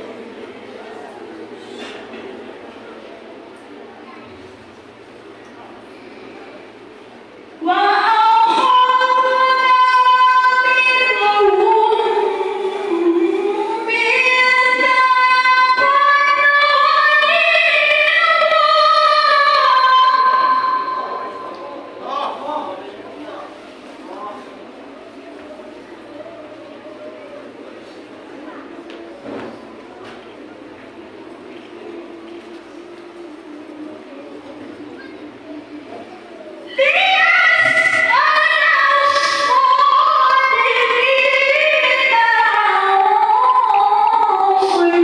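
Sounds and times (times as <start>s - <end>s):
woman reciting over a microphone: 7.6s - 21.8s, 32.1s - 45.0s.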